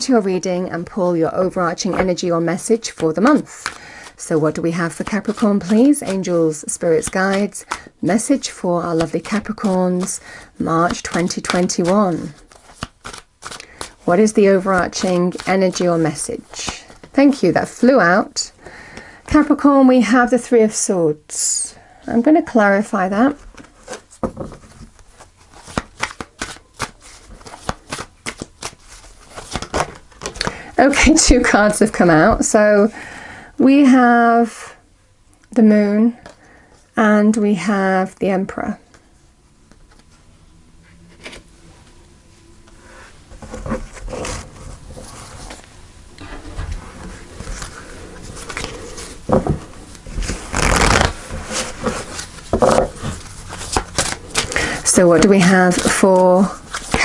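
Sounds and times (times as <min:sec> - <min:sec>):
cards being shuffled: 0:01.8 - 0:17.9, 0:23.4 - 0:31.4, 0:47.0 - 0:57.0.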